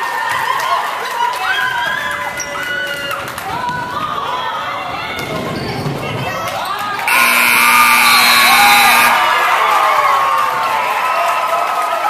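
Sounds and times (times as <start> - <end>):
scoreboard buzzer: 7.1 - 9.3.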